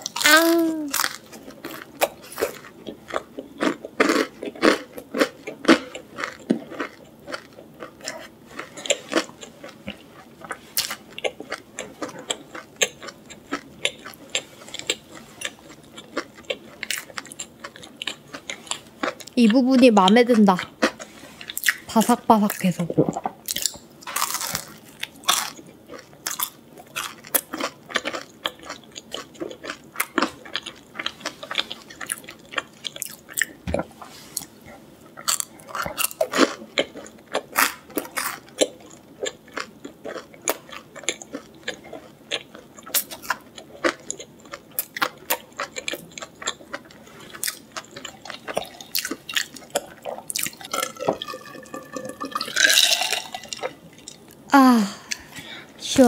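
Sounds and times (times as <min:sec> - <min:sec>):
chewing crunchy food: 0:00.0 - 0:55.4
drinking and swallowing: 0:22.9 - 0:23.4, 0:48.1 - 0:54.4.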